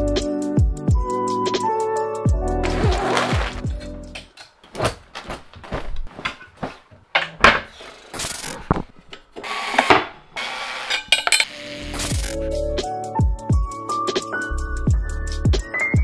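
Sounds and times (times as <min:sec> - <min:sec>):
rustling: 0:04.6 - 0:07.0.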